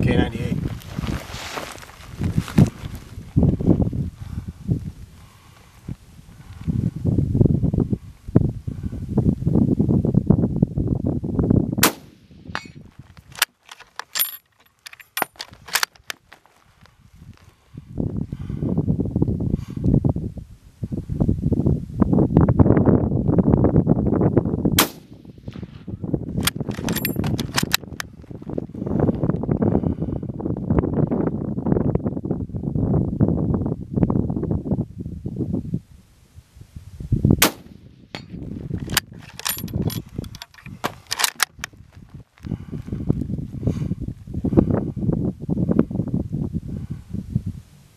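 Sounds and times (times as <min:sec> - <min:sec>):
rifle shots: 0:11.8 - 0:12.7, 0:24.8 - 0:25.2, 0:37.4 - 0:37.8.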